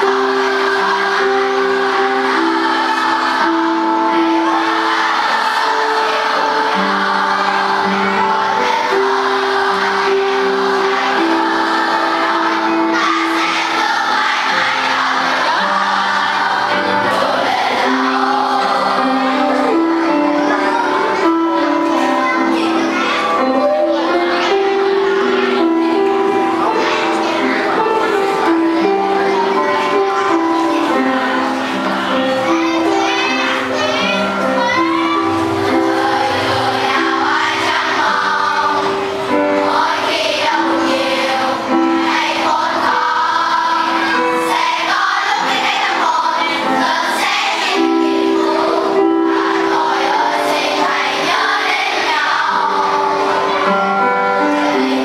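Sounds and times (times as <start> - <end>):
children's choir singing: 0.0 - 55.0.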